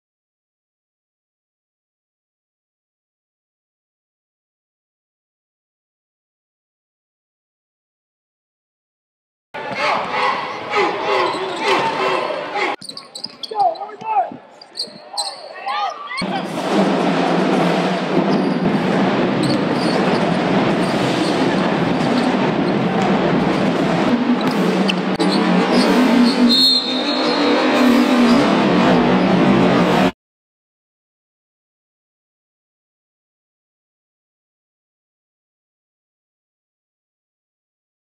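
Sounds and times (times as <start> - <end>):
voices: 9.6 - 16.5
crowd din: 9.6 - 30.1.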